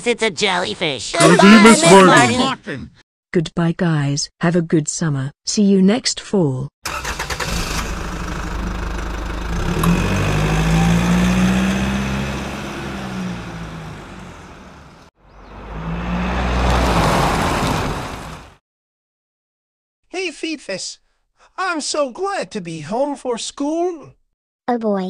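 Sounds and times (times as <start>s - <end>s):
bus engine revving: 6.9s - 18.6s.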